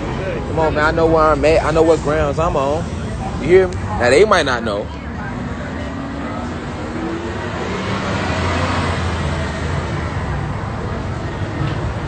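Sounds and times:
passing vehicle engine and tyres: 0.0 - 12.0.

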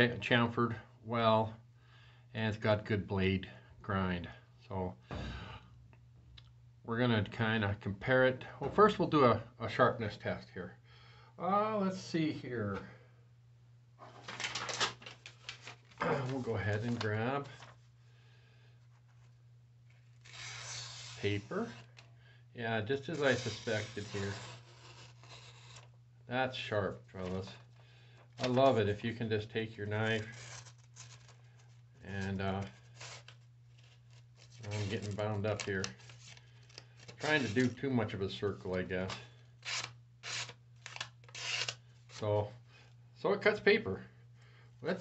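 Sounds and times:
blade slicing through paper: 20.2 - 21.9, 23.2 - 25.9.

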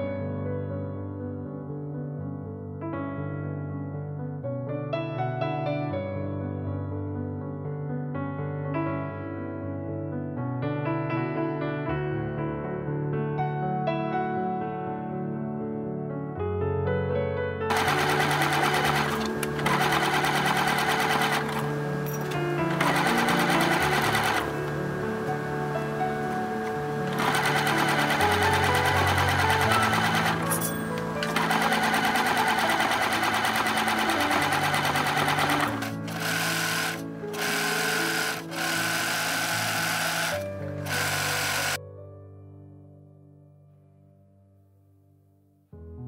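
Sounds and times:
soft background music: 0.0 - 46.0
sewing machine stitching: 17.7 - 41.8.

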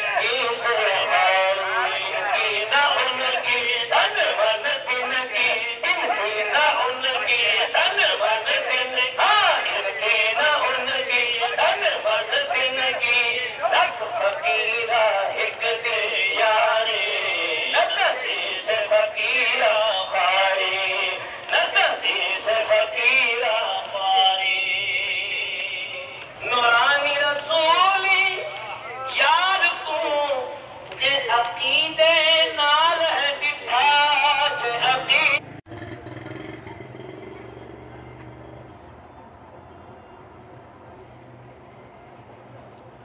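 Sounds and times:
man singing devotional song: 0.0 - 35.4.

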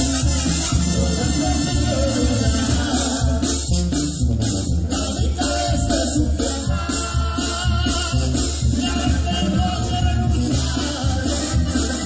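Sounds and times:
accordion: 0.0 - 12.0
brass band music: 0.0 - 12.0
drums: 0.0 - 12.0
sousaphone bass: 0.0 - 12.0.

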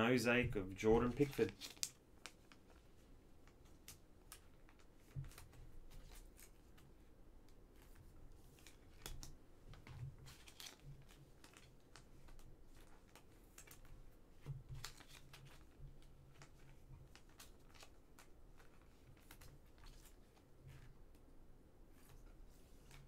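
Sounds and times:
trading cards rustling and clicking: 0.1 - 21.3, 21.9 - 23.0.

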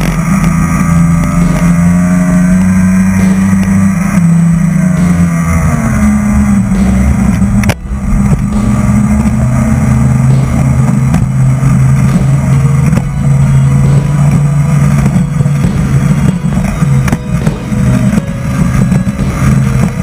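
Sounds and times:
speedboat engine running hard: 0.0 - 20.0.

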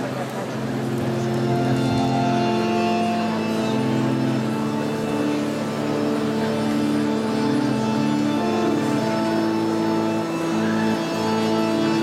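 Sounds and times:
slow keyboard melody: 0.0 - 12.0
low drone: 0.4 - 12.0.

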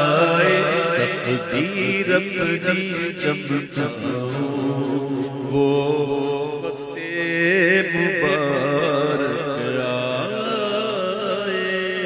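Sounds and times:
man singing devotional chant: 0.0 - 12.0.

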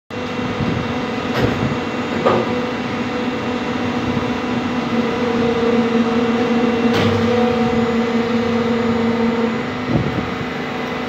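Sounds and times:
machine humming: 0.1 - 11.0.

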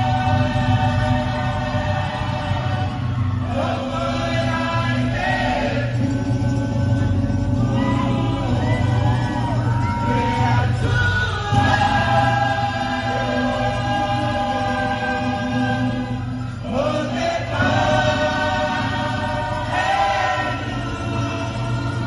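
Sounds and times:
group of voices singing: 0.0 - 22.0
steady low accompaniment: 0.0 - 22.0.

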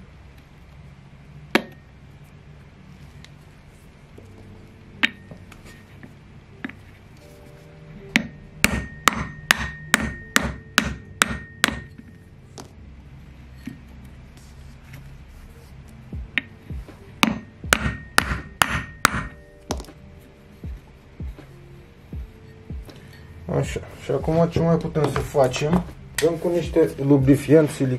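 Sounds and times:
hammer blows on wooden block: 8.1 - 12.0, 16.2 - 20.0.

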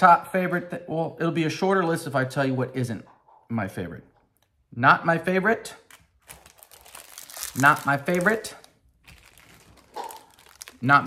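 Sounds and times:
plastic packaging crinkling: 5.9 - 11.0.

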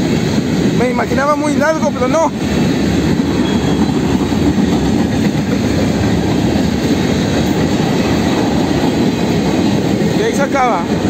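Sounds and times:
freight train wheels rumbling on rail: 0.0 - 11.0.

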